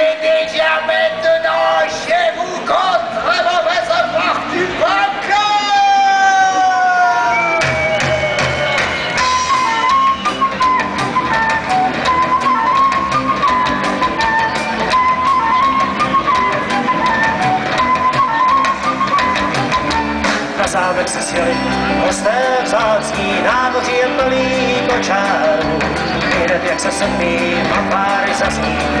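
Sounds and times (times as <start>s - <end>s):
ska-punk band playing live: 7.2s - 29.0s
trumpet melody: 8.2s - 25.6s.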